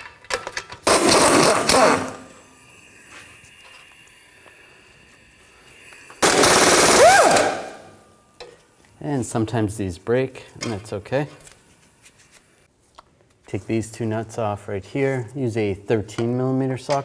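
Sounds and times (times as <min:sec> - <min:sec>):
impact gun whine: 0:00.8 - 0:02.6, 0:06.1 - 0:08.0.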